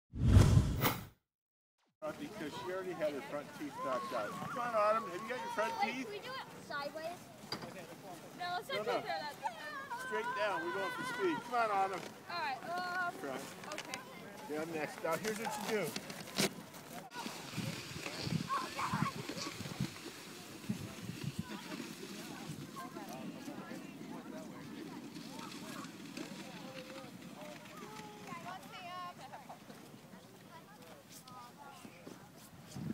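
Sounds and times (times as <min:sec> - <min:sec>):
whoosh: 0:00.1 - 0:01.2
outdoor noise: 0:01.9 - 0:32.9
people calling and crying out: 0:03.4 - 0:07.4, 0:08.4 - 0:14.5.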